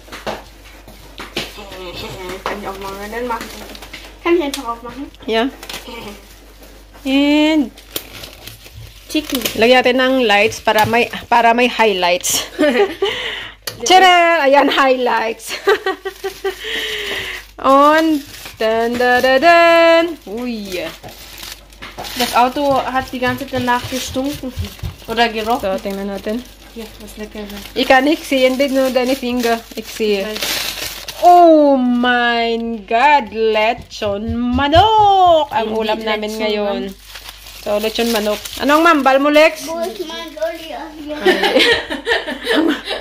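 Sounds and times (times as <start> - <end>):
plastic bag rustling: 0.0 - 34.2, 34.9 - 42.2
person speaking: 37.6 - 41.6.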